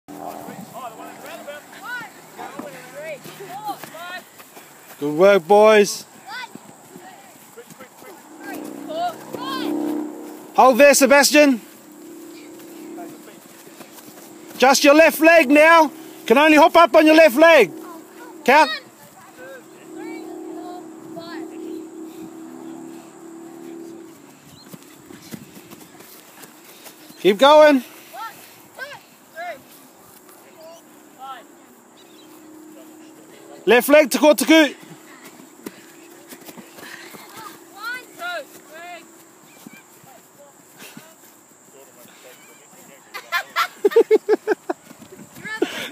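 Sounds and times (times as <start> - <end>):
soft footsteps on grass: 0.1 - 33.7, 34.4 - 45.9
boys shouting: 0.2 - 4.4, 5.0 - 11.6, 14.5 - 24.2, 27.2 - 29.8, 33.7 - 40.2
distant children's voices: 17.6 - 27.2, 34.8 - 41.3.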